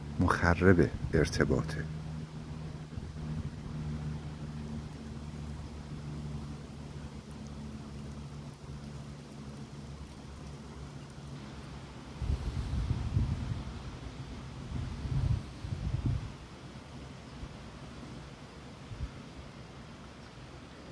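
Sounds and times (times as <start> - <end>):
wind rustling tree leaves: 0.0 - 20.9
wind buffeting microphone: 0.8 - 1.4, 12.2 - 16.4.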